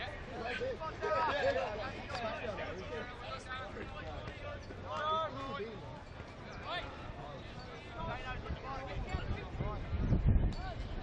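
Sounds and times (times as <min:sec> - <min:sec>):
players calling out: 0:00.0 - 0:09.4.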